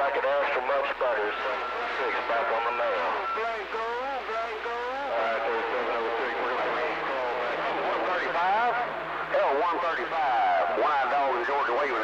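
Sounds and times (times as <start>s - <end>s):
man's voice over radio: 0.0s - 12.0s
radio static hiss: 0.0s - 12.0s.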